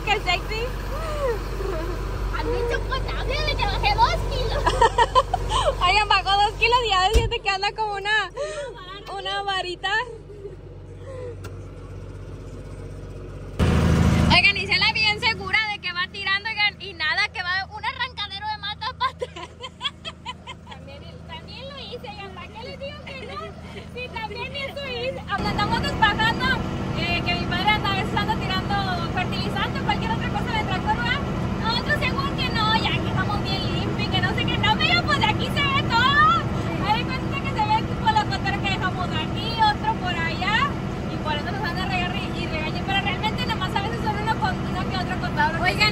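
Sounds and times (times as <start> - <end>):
women talking: 0.0 - 10.2, 14.3 - 45.9
voices: 0.0 - 12.9, 14.2 - 45.9
tractor engine humming: 0.0 - 45.9.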